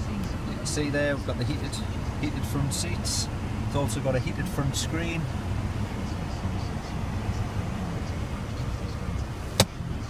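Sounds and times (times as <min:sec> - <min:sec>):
low rumble in car cabin: 0:00.0 - 0:10.0.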